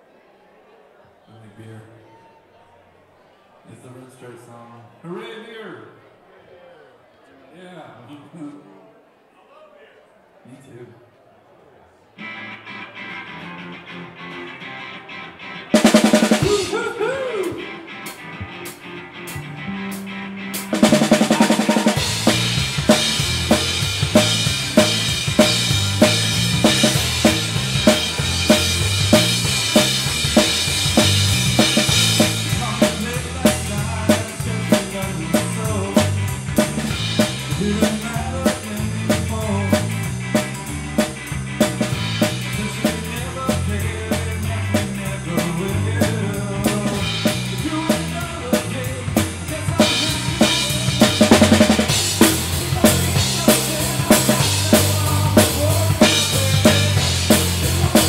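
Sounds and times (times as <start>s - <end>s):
rock band playing: 12.2s - 58.0s
drum kit beat: 15.8s - 58.0s.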